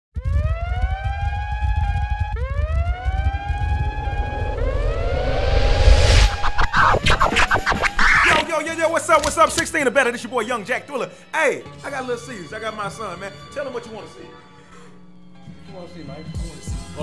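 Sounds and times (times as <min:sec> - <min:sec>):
rising siren-like tones: 0:00.3 - 0:08.4
heavy bass rumble: 0:01.0 - 0:08.3
whooshing rise: 0:02.8 - 0:08.5.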